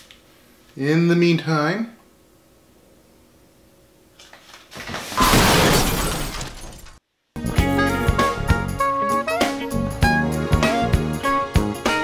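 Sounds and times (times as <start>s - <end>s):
music with a beat: 7.4s - 12.0s.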